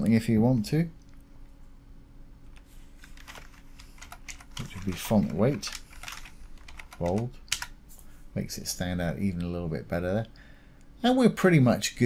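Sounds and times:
typing on computer keyboard: 0:03.1 - 0:07.7.

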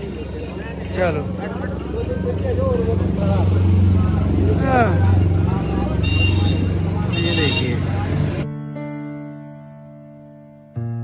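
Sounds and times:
people's voices: 0:00.0 - 0:08.5.

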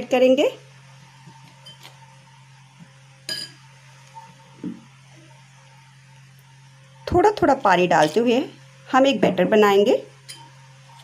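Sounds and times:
steady low hum: 0:00.0 - 0:11.0
metal spoon clinking glass bowl: 0:03.3 - 0:03.6, 0:10.3 - 0:10.5.

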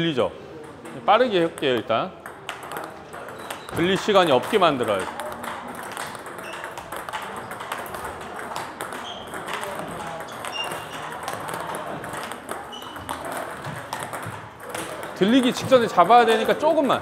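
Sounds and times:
table tennis balls clicking: 0:00.4 - 0:17.0
ringing pings: 0:02.5 - 0:03.8, 0:05.1 - 0:14.8.

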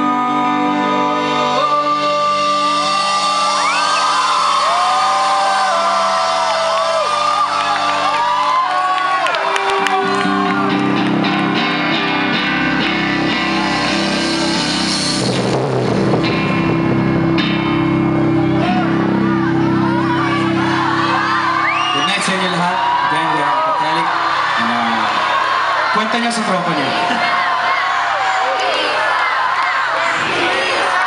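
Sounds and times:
live rock band playing: 0:00.0 - 0:08.6, 0:09.3 - 0:25.3
crowd shouting and whooping: 0:02.3 - 0:15.3, 0:18.0 - 0:31.0.

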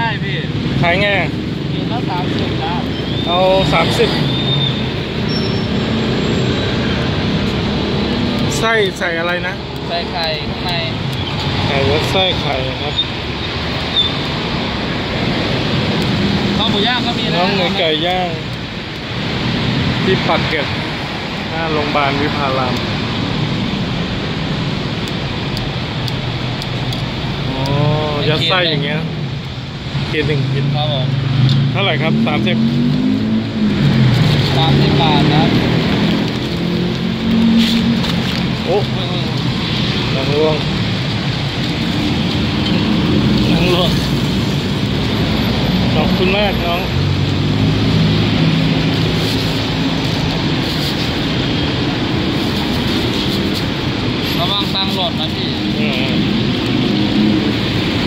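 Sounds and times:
street traffic rumble: 0:00.0 - 0:58.0.

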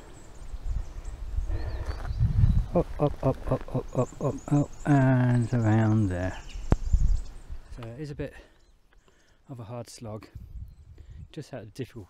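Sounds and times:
footsteps on gravel rumbling: 0:01.7 - 0:03.8
man speaking: 0:02.8 - 0:06.4, 0:11.3 - 0:12.0.

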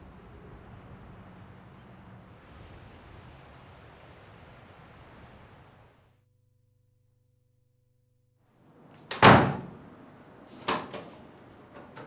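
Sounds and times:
door slamming: 0:09.0 - 0:09.8.

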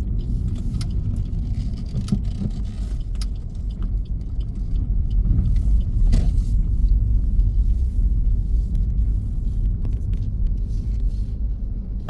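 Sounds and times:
road and engine rumble in car: 0:00.0 - 0:12.0.

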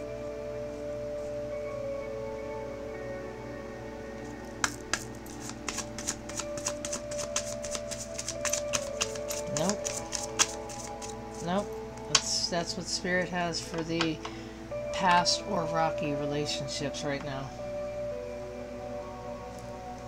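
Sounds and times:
soft background music: 0:00.0 - 0:20.0
cards being shuffled: 0:04.6 - 0:12.3.

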